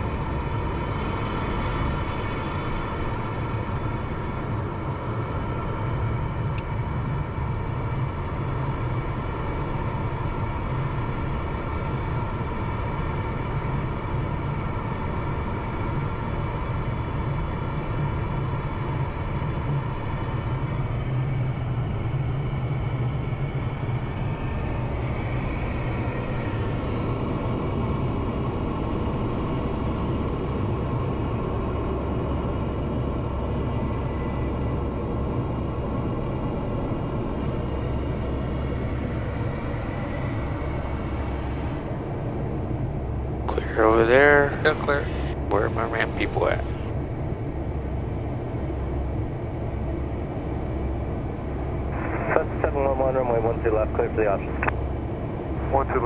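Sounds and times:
jet engines rumbling: 0.0s - 56.0s
steady engine tones: 0.0s - 56.0s.

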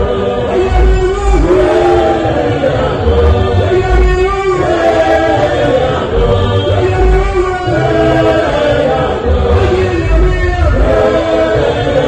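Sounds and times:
low bass: 0.0s - 4.4s, 5.6s - 11.3s
gospel choir singing in harmony: 0.0s - 12.0s.

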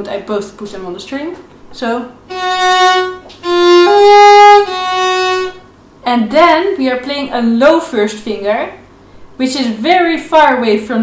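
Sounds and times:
violin bowed notes: 2.3s - 5.7s.

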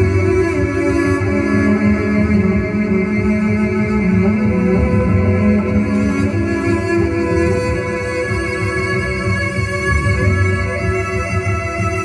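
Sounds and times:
bowed electric cello: 0.0s - 12.0s.

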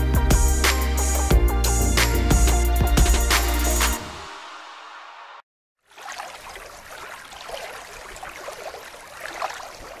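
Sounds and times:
water splashing and bubbling: 5.8s - 10.0s.

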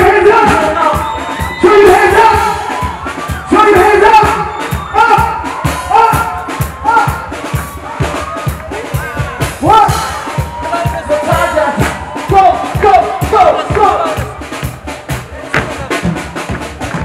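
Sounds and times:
live pop music through loudspeakers: 0.0s - 17.0s.

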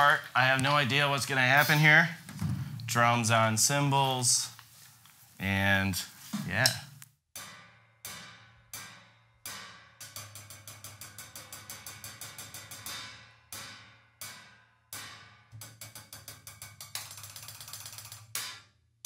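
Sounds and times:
cymbals struck with drumsticks: 6.4s - 17.4s.

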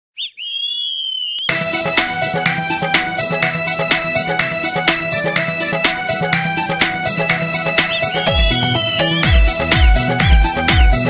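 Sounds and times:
high whistle-like tone: 0.2s - 1.6s, 7.9s - 9.2s
music with regular beat: 1.5s - 11.0s.

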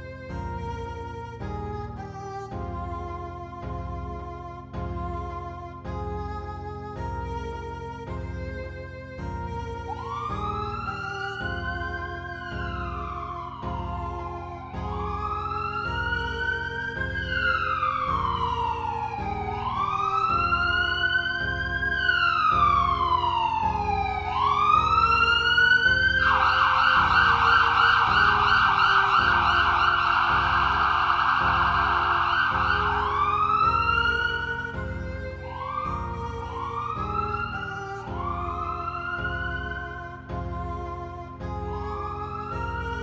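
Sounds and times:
music with steady low beat: 0.0s - 43.0s
siren wailing: 9.9s - 40.8s
siren rapid yelp: 17.2s - 34.6s.

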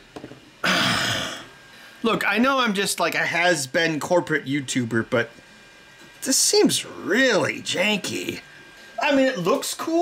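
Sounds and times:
man clearing his throat: 0.6s - 1.5s.

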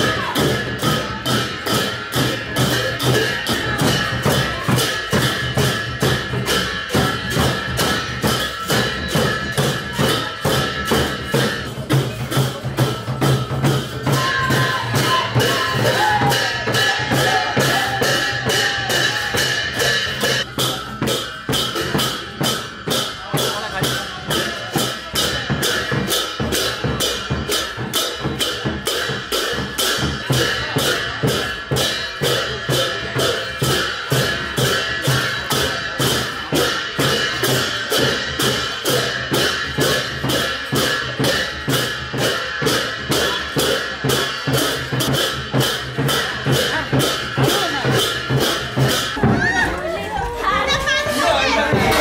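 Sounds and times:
brass hand cymbals clashing: 0.0s - 49.4s
drum beat: 0.0s - 52.0s
people talking: 0.0s - 52.0s.

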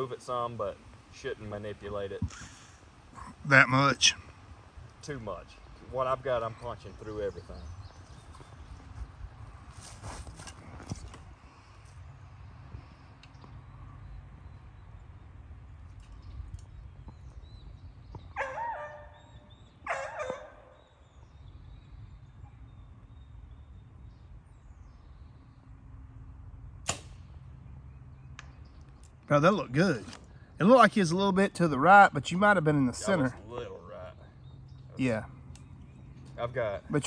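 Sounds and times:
wind rumble on microphone: 6.9s - 18.4s
bow string snap: 26.8s - 27.3s.

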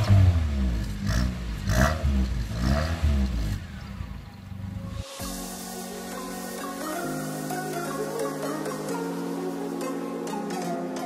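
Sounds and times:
car engine revving: 0.0s - 5.2s.

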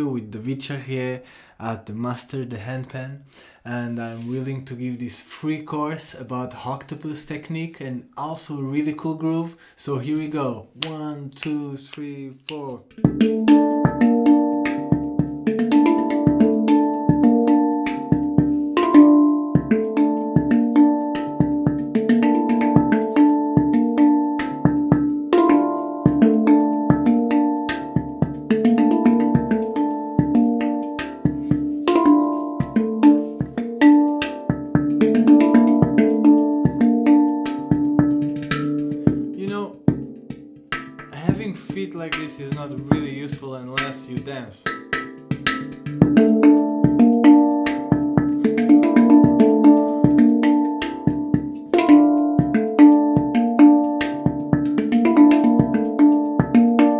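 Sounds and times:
handpan ringing notes: 12.9s - 43.0s, 43.8s - 56.9s.

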